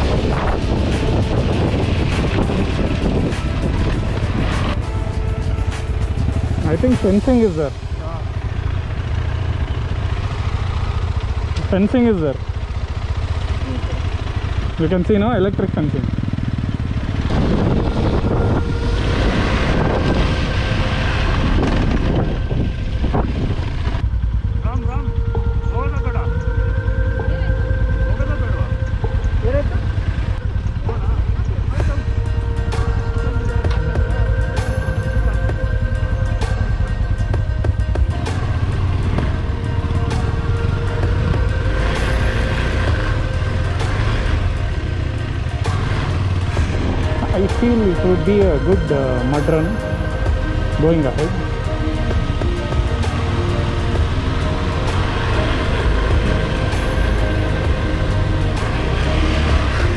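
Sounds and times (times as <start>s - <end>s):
background music with held notes: 0.0s - 8.5s, 24.7s - 59.9s
motorcycle engine running: 0.0s - 59.9s.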